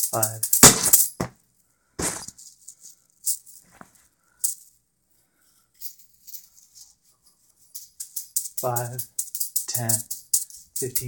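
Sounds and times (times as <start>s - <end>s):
juggling balls rattling and clicking: 0.0s - 1.3s, 5.8s - 11.0s.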